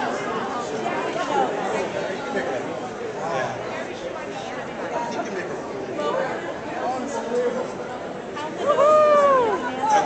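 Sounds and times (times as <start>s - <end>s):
crowd chatter in a large hall: 0.0s - 10.0s.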